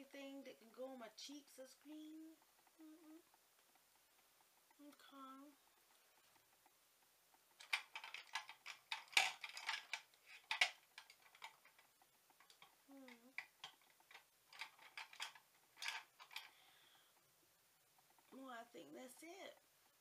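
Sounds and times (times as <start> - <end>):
plastic makeup cases clattering: 7.6 - 11.8, 13.4 - 16.5.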